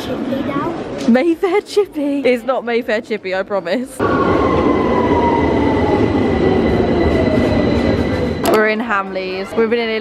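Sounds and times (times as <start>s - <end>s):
train rumble: 4.0s - 10.0s.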